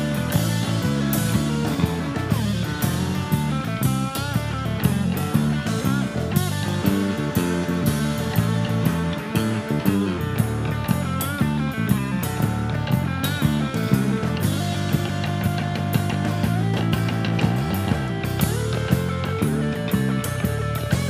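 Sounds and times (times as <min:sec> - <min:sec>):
bass line: 0:00.0 - 0:21.0
drum kit: 0:00.0 - 0:21.0
electric guitar lead lines: 0:00.0 - 0:21.0.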